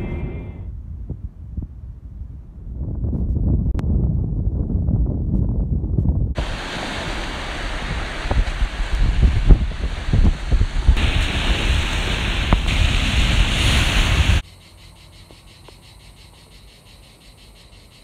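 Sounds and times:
wind buffeting microphone: 0:00.0 - 0:14.4
waves breaking on rocks: 0:06.4 - 0:14.4
crickets chirping: 0:14.4 - 0:18.0.

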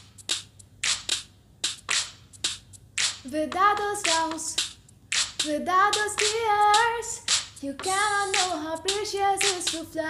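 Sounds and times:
sharp hand claps: 0:00.3 - 0:02.2, 0:03.0 - 0:03.2, 0:04.0 - 0:05.5, 0:07.3 - 0:07.6, 0:09.4 - 0:09.8.

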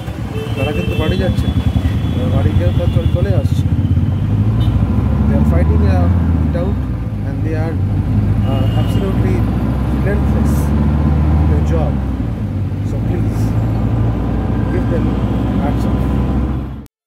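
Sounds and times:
car engine and road noise: 0:00.0 - 0:16.9
person speaking: 0:12.8 - 0:13.7.

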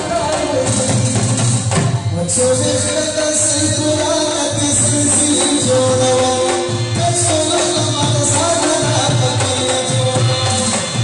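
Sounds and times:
harmonium: 0:00.0 - 0:11.0
man singing: 0:00.0 - 0:11.0.

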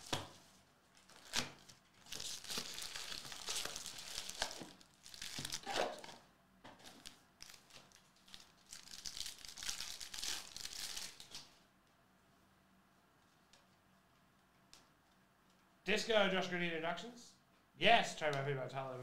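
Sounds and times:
foil wrappers crinkling and tearing: 0:00.9 - 0:06.1, 0:06.8 - 0:11.6.

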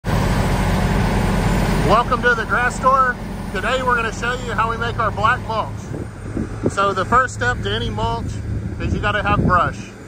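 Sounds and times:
diesel grinder drone: 0:00.0 - 0:10.0
rumble of grinding mulch: 0:00.1 - 0:10.0.

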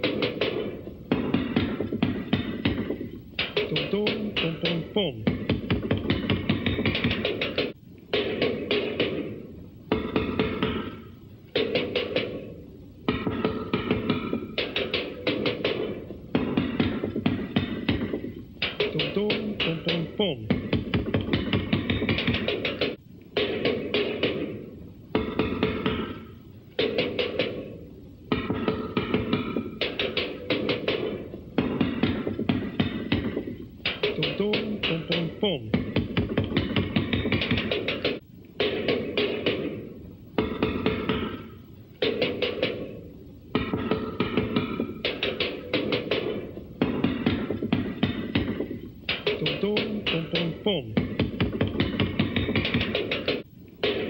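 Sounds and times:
drum kit rapid hits: 0:00.0 - 0:54.0.

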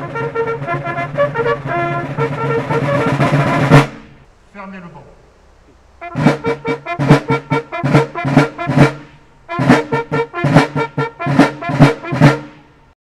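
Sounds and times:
brass fanfare: 0:00.0 - 0:04.2, 0:06.0 - 0:12.8.

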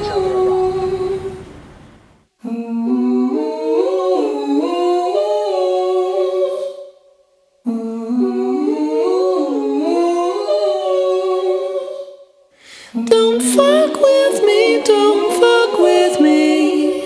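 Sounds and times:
hummed vocal harmonies: 0:00.0 - 0:17.0.

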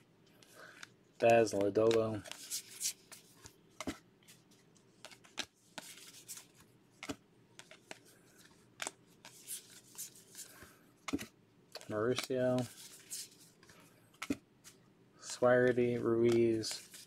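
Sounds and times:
cards sliding on cards: 0:00.3 - 0:17.0.

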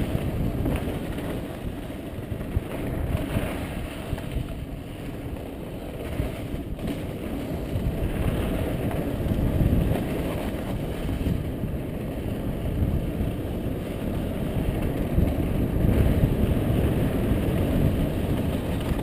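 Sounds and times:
bike tyres rumbling on rough ground: 0:00.0 - 0:19.0
wind on microphone: 0:00.0 - 0:19.0.

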